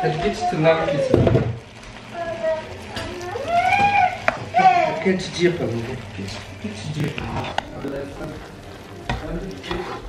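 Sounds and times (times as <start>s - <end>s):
high-pitched voice making drawn-out sounds: 2.1s - 5.0s
kitchen items clattering: 3.0s - 10.0s.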